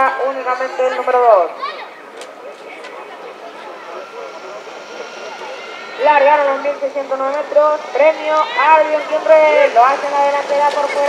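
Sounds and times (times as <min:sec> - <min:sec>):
faint voices: 0:00.0 - 0:11.0
truck engine hum: 0:00.0 - 0:11.0.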